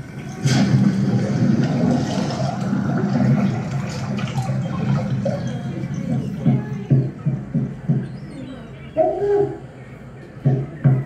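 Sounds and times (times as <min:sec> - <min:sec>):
rushing water: 0:00.0 - 0:07.6.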